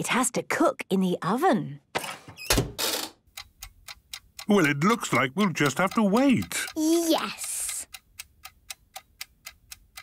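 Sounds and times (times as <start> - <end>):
clock ticking: 3.2 - 10.0.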